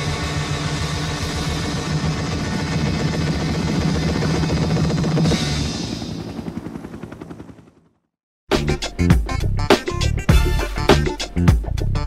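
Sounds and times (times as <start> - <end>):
engine drone: 0.0 - 6.9
helicopter rotor chopping: 0.0 - 8.1.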